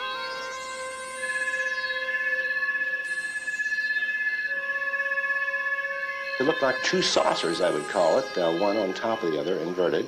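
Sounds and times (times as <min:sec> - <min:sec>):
eerie synthesizer drone: 0:00.0 - 0:10.0.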